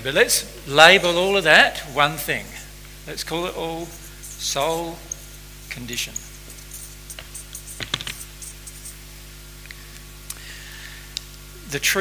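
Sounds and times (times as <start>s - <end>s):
marker squeaking on whiteboard: 3.6s - 9.0s.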